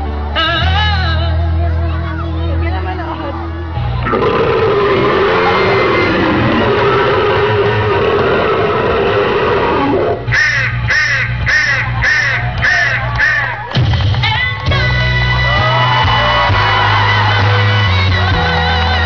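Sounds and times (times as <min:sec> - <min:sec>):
loud backing track: 0:00.0 - 0:19.0
horror sound effects: 0:04.0 - 0:10.4
crow caws: 0:10.3 - 0:13.6.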